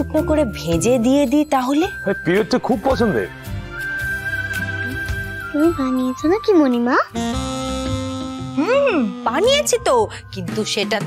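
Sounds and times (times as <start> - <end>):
comic music with pitch slides: 2.1 - 11.0.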